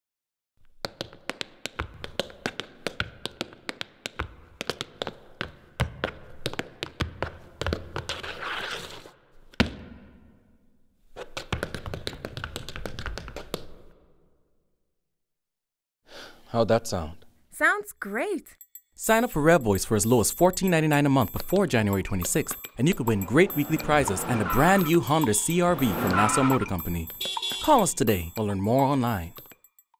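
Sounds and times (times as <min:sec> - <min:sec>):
tap shoes on hard floor: 0:00.7 - 0:08.3, 0:11.2 - 0:13.9.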